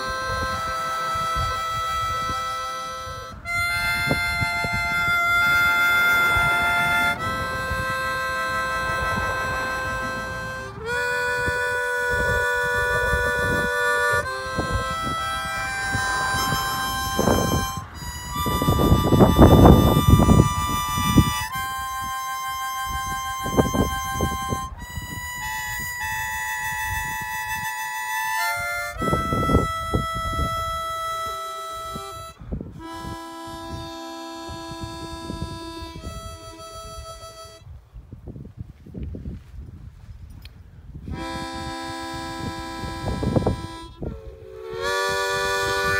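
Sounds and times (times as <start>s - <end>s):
harmonica chord: 0.0s - 37.8s, 41.0s - 45.9s.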